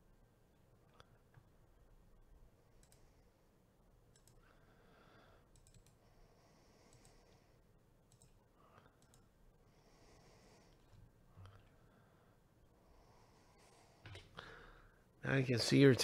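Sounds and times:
mouse and keyboard clicks: 4.1 - 4.4, 5.5 - 6.0, 8.1 - 8.4.

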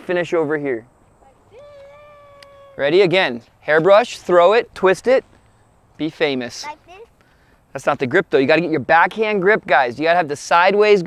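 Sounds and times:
faint high-pitched vocal call: 1.2 - 3.1.

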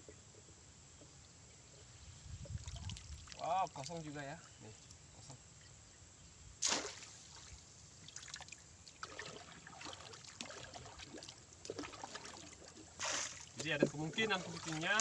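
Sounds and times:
paddle dipping into river: 2.4 - 4.6, 6.6 - 15.0
sharp splash: 6.6 - 13.6, 14.4 - 15.0
water dripping off paddle: 8.2 - 15.0.

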